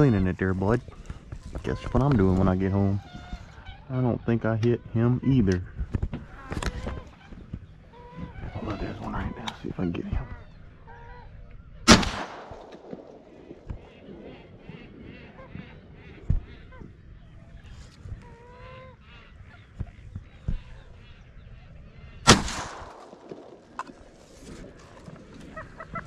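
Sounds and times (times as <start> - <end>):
marsh birds calling: 0.0 - 26.0
shotgun shots with echo: 11.9 - 13.2, 22.2 - 23.6.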